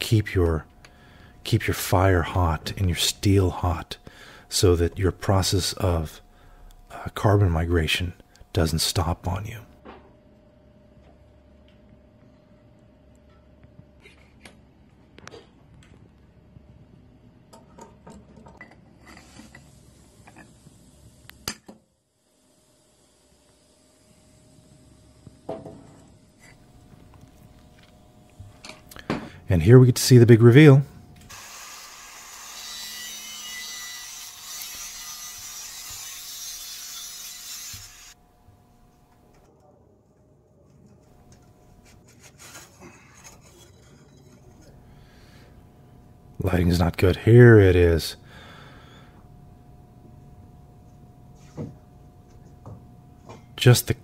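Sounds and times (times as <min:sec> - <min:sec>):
angle grinder grinding metal: 0:31.3 - 0:38.2
metal clinking and scraping: 0:42.2 - 0:44.8.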